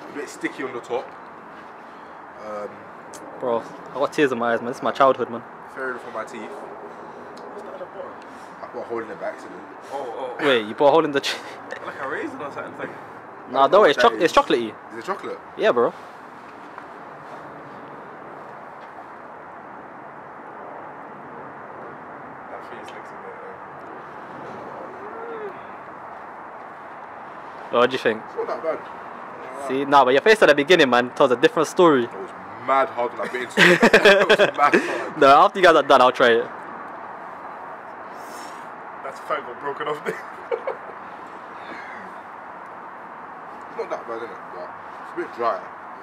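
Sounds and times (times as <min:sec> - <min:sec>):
low outdoor background noise: 0:00.0 - 0:46.0.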